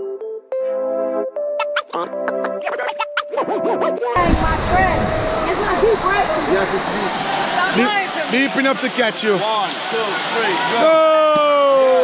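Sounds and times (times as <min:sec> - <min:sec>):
keyboard background music: 0:00.0 - 0:04.3
crowd talking and calling: 0:04.2 - 0:11.2
waterfall rushing over rock: 0:04.2 - 0:12.0.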